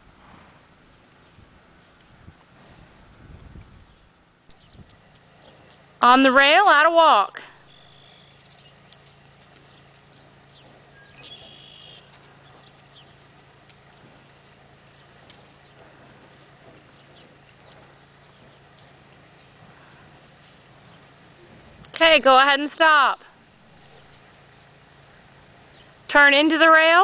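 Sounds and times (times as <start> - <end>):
horse hoofbeats on dirt: 0.0 - 27.0
low background hum: 0.0 - 27.0.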